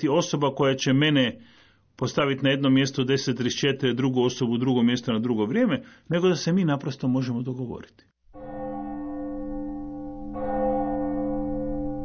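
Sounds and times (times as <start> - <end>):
deep bell ringing: 8.3 - 12.0.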